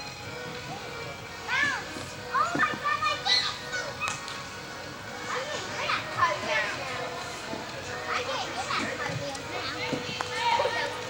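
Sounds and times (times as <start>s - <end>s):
young voices shouting: 8.2s - 11.0s.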